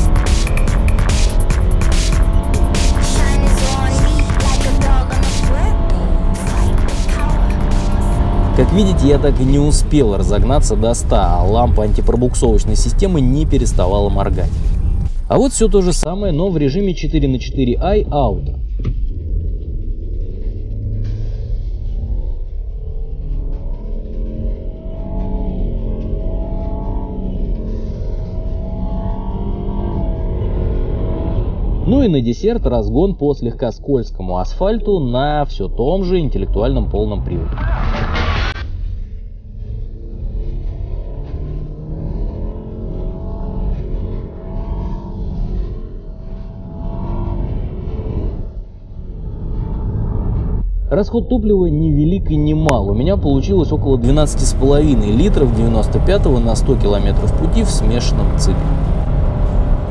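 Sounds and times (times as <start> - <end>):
car engine pulling hard: 0.0 - 16.1, 19.0 - 32.1, 34.9 - 50.0, 54.0 - 59.9
road rumble: 0.0 - 50.6, 52.9 - 59.9.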